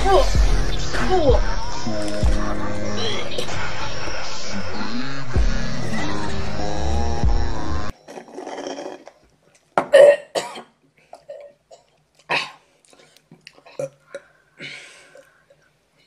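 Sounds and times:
music playing: 0.0s - 7.9s
coughs and throat clearing: 9.8s - 12.6s.

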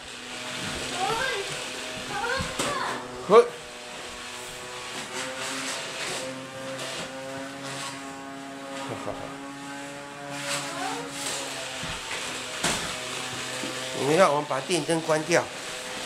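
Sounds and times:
fan motor humming: 0.0s - 16.0s.

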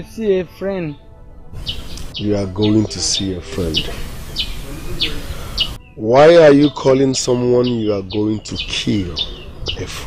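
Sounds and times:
bird chirping: 1.6s - 10.0s.

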